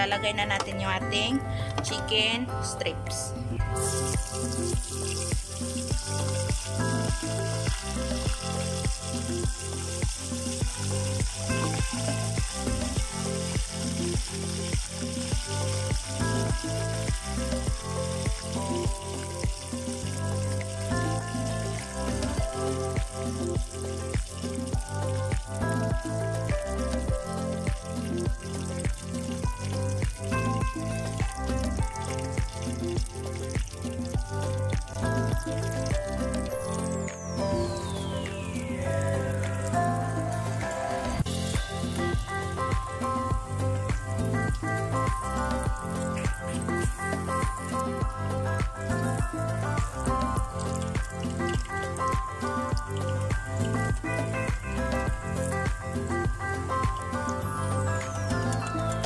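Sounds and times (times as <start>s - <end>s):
background music with a beat: 3.6s - 59.0s
chicken deep-frying in oil: 3.8s - 40.6s, 41.2s - 59.0s.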